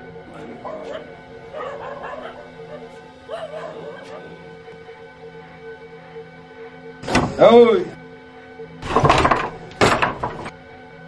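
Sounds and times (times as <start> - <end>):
music of held tones: 0.0 - 8.8
dog barking: 0.3 - 4.9.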